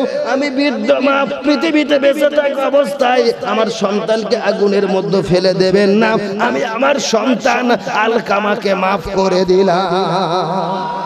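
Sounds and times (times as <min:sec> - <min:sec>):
man singing through loudspeakers: 0:00.0 - 0:11.0.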